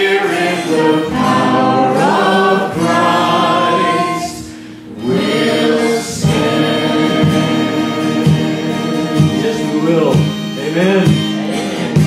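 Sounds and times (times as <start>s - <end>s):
group singing worship song: 0.0s - 10.6s
acoustic guitar: 0.0s - 12.0s.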